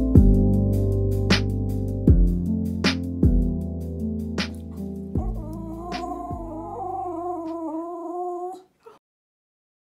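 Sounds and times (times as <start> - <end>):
music: 0.0 - 7.6
dog howling: 5.2 - 9.0.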